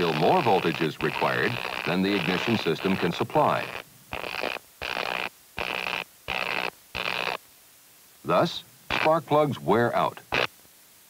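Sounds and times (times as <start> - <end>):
spark buzzes: 0.0 - 7.5, 8.3 - 10.6.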